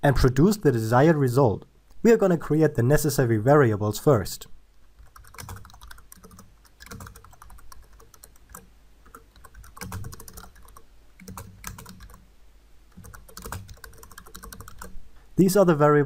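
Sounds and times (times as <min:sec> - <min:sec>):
typing on computer keyboard: 0:05.0 - 0:12.2, 0:12.9 - 0:15.0.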